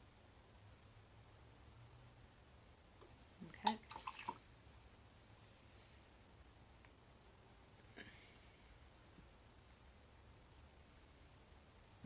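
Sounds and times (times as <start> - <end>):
paintbrush splashing in water container: 3.6 - 4.5.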